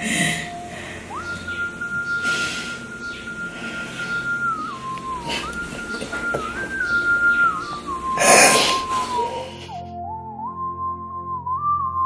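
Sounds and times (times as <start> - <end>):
mournful whistle-like melody: 0.0 - 12.0.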